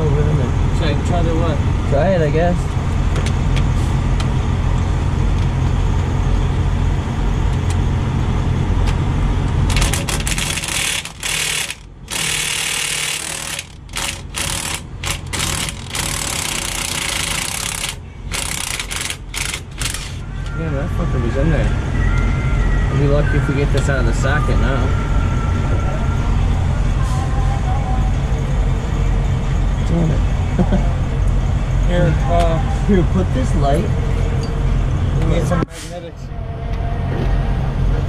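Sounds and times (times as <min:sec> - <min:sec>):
low engine rumble: 0:00.0 - 0:38.0
impact wrench bursts: 0:09.7 - 0:20.2.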